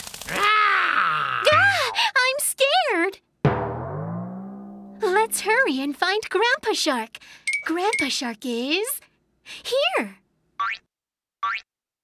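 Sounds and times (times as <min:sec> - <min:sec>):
cartoon boing sound effect: 0:03.5 - 0:05.1.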